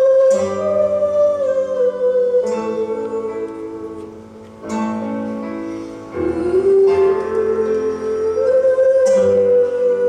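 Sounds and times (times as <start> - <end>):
acoustic guitar duet: 0.0 - 10.0.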